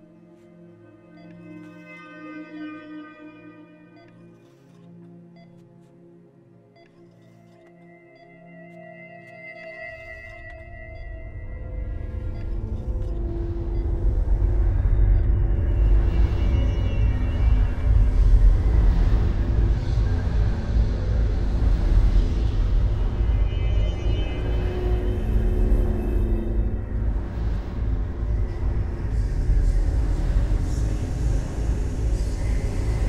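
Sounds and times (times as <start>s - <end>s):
suspenseful horror music: 0.0s - 33.0s
deep rumbling drone: 10.5s - 33.0s.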